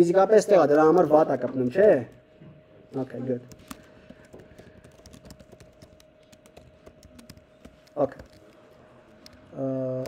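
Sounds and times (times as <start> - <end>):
faint steady hum: 0.0 - 10.0
typing on computer keyboard: 3.4 - 10.0.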